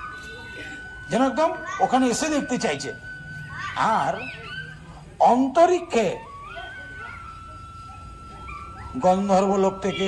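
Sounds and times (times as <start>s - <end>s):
high-pitched whine: 0.0s - 10.0s.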